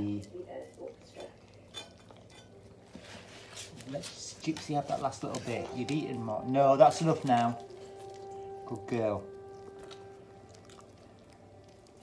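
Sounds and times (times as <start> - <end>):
animals eating: 0.0 - 12.0.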